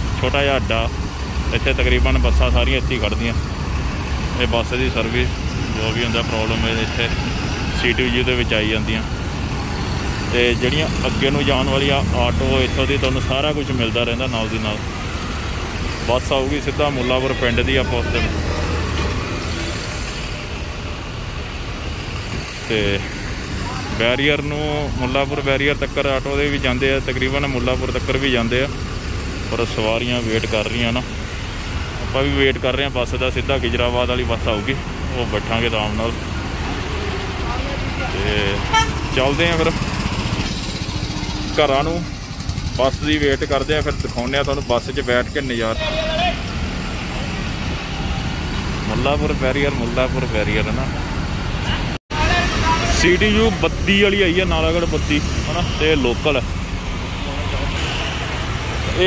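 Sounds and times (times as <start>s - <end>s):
city road traffic: 0.0s - 59.0s.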